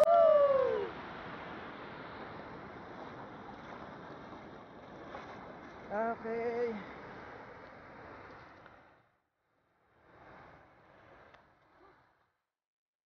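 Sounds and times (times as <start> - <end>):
person calling out: 0.0 - 0.9
river water over a weir: 0.0 - 12.3.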